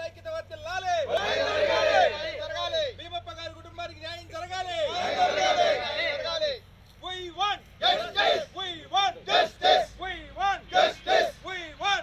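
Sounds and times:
crowd of men shouting slogans: 0:00.8 - 0:03.0, 0:04.6 - 0:06.6, 0:07.8 - 0:12.0.

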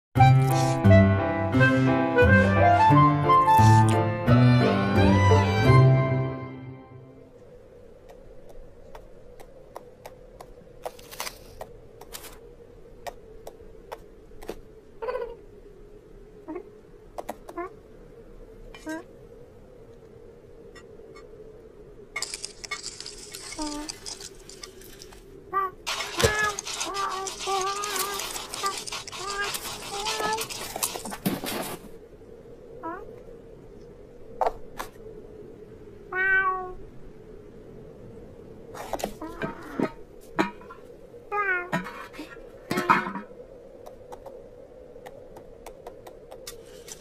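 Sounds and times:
scratchy ice crackling: 0:22.2 - 0:25.2, 0:25.9 - 0:31.8.

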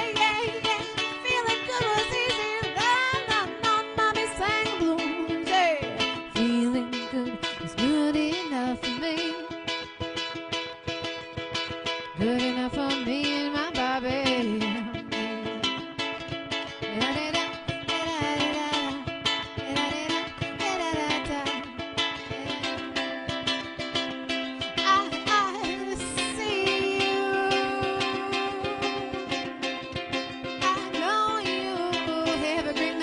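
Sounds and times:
woman singing: 0:00.0 - 0:10.2, 0:11.8 - 0:33.0
ukulele strummed: 0:00.0 - 0:33.0.

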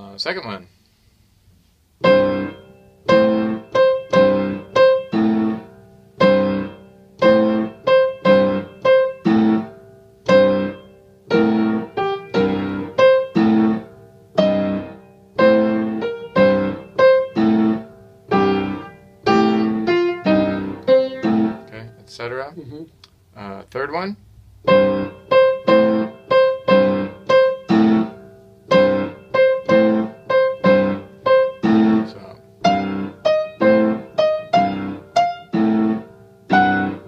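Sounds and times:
piano blues chords: 0:02.0 - 0:22.4, 0:24.6 - 0:37.0.

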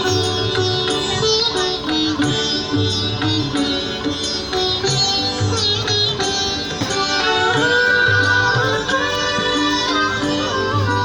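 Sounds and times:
plucked string music: 0:00.0 - 0:11.0.

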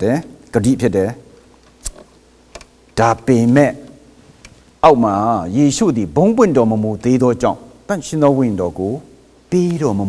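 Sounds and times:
man speaking: 0:00.0 - 0:01.3, 0:03.0 - 0:04.0, 0:04.8 - 0:10.0
small sharp clicks: 0:01.6 - 0:03.0.

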